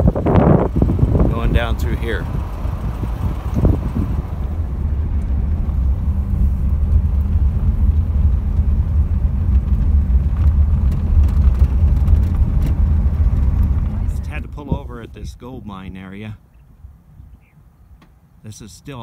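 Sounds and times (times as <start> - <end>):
vehicle engine drone: 0.0 - 18.7
road noise: 0.0 - 19.0.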